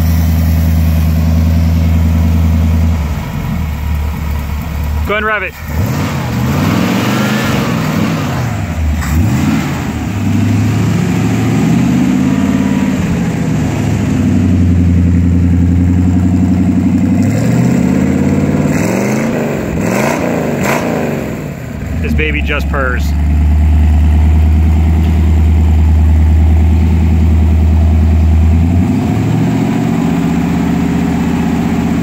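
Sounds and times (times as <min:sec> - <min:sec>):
car engine revving: 0:00.0 - 0:32.0.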